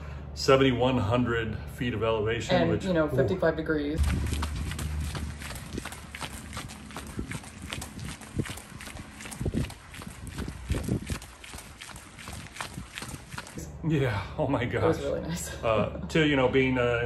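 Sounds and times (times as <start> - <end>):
running footsteps on pavement: 4.0 - 13.6.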